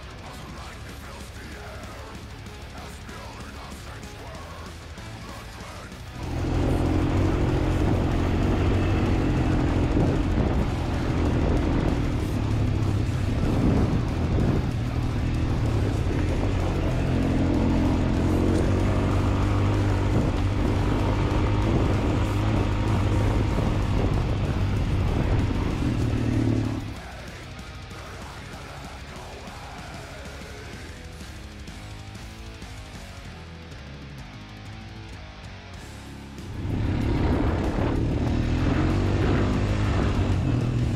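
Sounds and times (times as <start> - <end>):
faint music: 0.0 - 40.9
quad bike engine running: 0.0 - 40.9.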